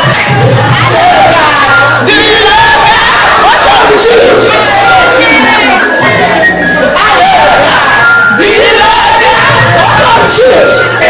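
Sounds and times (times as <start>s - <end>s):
crowd shouting: 0.0s - 11.0s
music: 0.0s - 11.0s.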